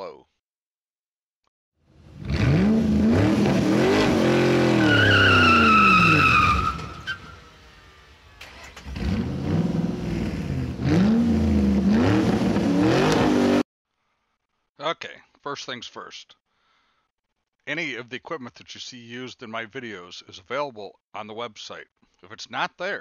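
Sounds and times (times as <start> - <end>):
car engine revving: 1.9 - 13.6
tires squealing: 2.2 - 7.7.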